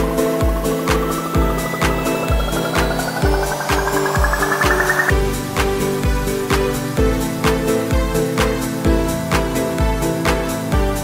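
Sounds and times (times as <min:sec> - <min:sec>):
electronic dance track: 0:00.0 - 0:06.8.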